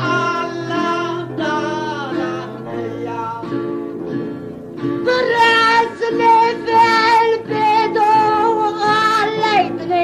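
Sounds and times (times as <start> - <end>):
high wavering folk singing: 0.0 - 10.0
instrumental accompaniment: 0.0 - 10.0.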